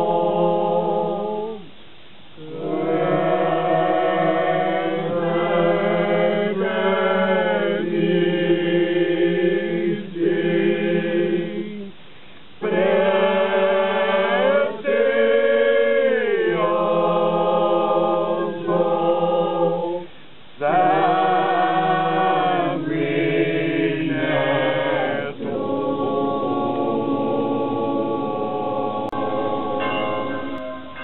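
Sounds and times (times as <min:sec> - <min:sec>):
male choir chanting: 0:00.0 - 0:01.7, 0:02.4 - 0:11.9, 0:12.6 - 0:31.0.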